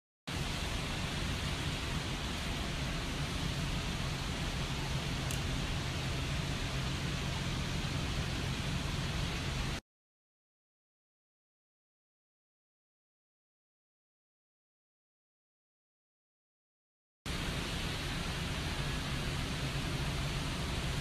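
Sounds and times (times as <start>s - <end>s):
steady rushing noise: 0.3s - 9.8s, 17.3s - 21.0s.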